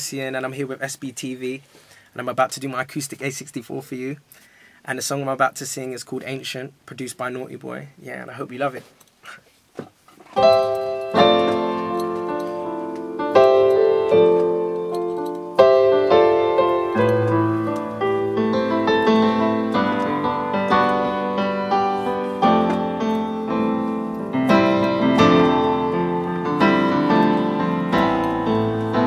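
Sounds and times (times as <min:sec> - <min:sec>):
piano chords on keyboard: 0:10.4 - 0:29.0.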